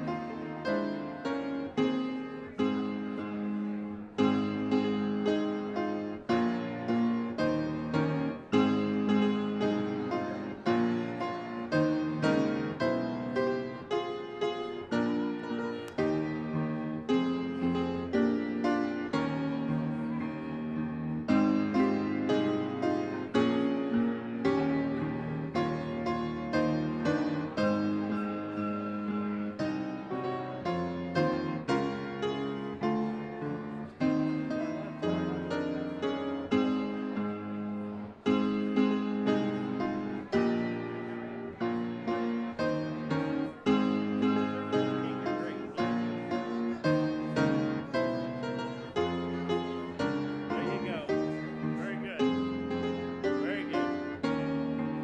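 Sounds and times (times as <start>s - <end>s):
piano playing slow chords: 0.0s - 55.0s.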